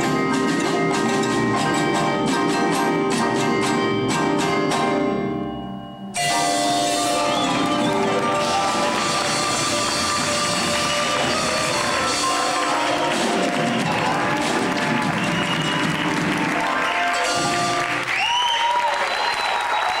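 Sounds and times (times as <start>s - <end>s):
audience applauding: 6.8s - 20.0s.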